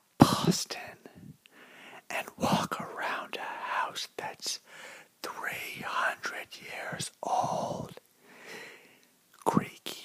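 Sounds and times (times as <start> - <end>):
man whispering: 0.2 - 1.4, 2.0 - 8.0, 9.4 - 10.0.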